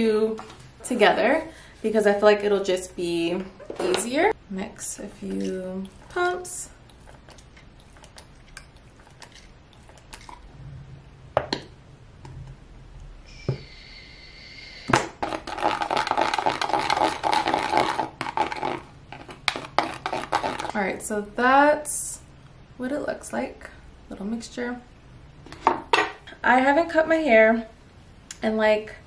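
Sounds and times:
wet squishing and scraping: 0:05.0 - 0:10.6.

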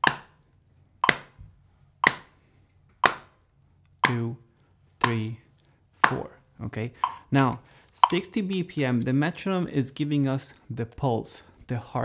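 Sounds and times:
hand tapping on leg: 0:01.0 - 0:01.3, 0:02.0 - 0:02.3, 0:07.0 - 0:07.2, 0:08.0 - 0:08.2
metronome clicking: 0:07.0 - 0:07.3, 0:08.0 - 0:08.6.

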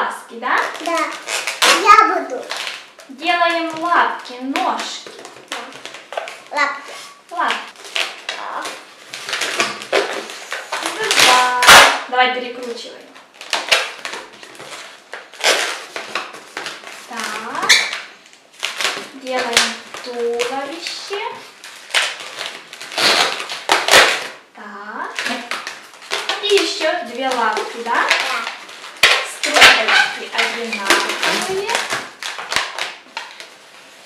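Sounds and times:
balloon rubber scraping: 0:00.6 - 0:12.0, 0:12.7 - 0:24.5, 0:25.2 - 0:34.0.

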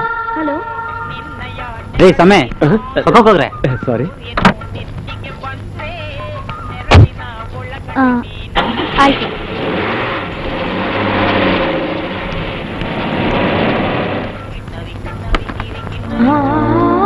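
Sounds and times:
car driving away: 0:08.5 - 0:14.5.

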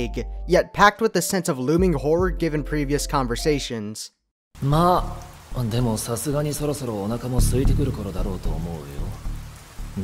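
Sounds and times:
man speaking: 0:00.0 - 0:09.2.

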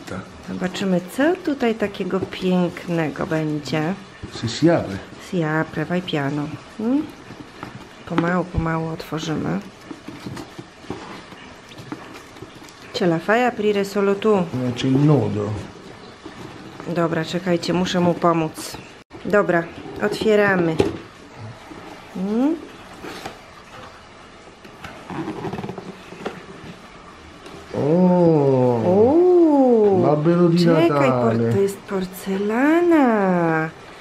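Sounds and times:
cardboard box rustling: 0:04.1 - 0:13.7, 0:14.5 - 0:18.9, 0:24.7 - 0:26.9.

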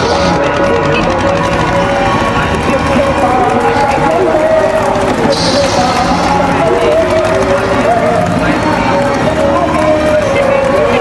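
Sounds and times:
man's voice over loudspeakers: 0:00.0 - 0:11.0.

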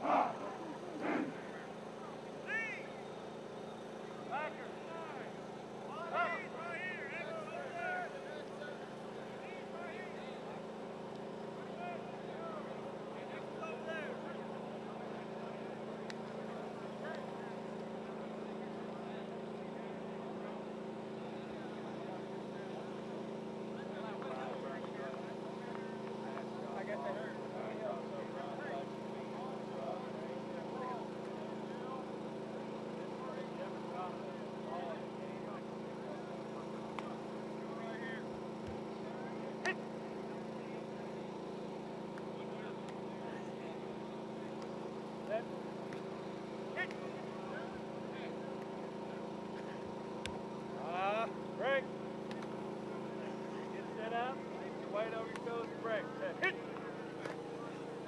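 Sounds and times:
faint distant voices: 0:00.0 - 0:58.0.

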